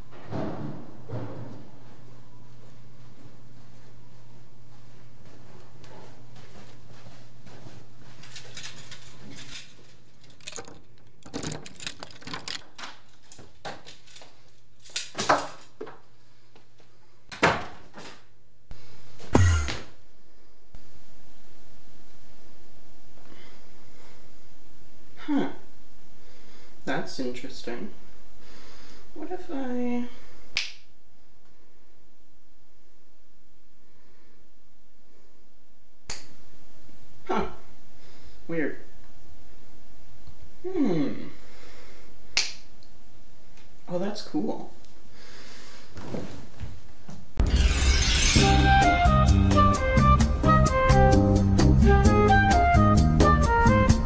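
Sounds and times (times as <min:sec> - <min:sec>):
footsteps: 0:00.0 - 0:14.6, 0:46.0 - 0:49.1
steady low hum: 0:00.0 - 0:14.9
door clicks and knocks: 0:10.3 - 0:13.0
finger snap: 0:30.5 - 0:30.9, 0:36.1 - 0:36.4, 0:42.3 - 0:42.9.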